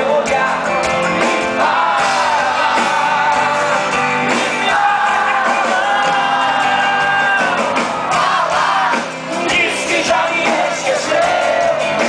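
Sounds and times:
drums: 0:00.0 - 0:12.0
man singing: 0:00.0 - 0:12.0
crowd shouting along: 0:01.5 - 0:12.0.

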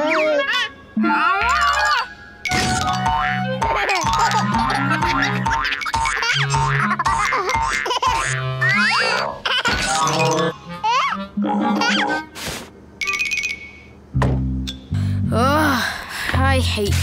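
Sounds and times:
playful cartoon music: 0:00.0 - 0:12.4.

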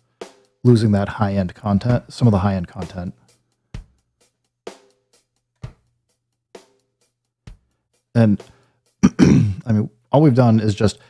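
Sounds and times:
drum loop: 0:00.3 - 0:03.2, 0:07.5 - 0:10.4.

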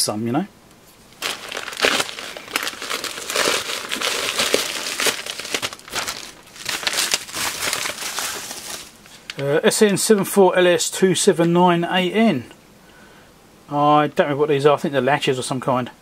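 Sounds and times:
plastic packaging crinkling: 0:01.1 - 0:09.4
sharp plastic crackle: 0:01.1 - 0:09.4.

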